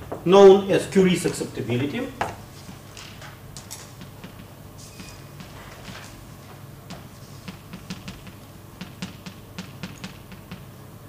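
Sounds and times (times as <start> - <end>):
chalk tapping and scratching: 2.3 - 10.7.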